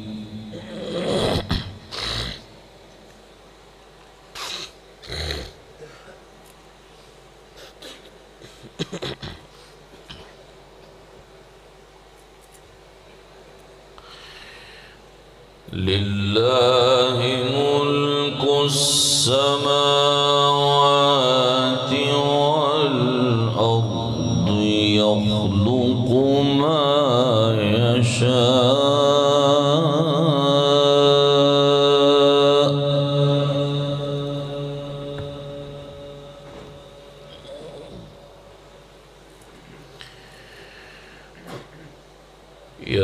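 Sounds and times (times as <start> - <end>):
man reciting melodically with echo: 0.0 - 1.9, 15.7 - 38.4, 42.8 - 43.0.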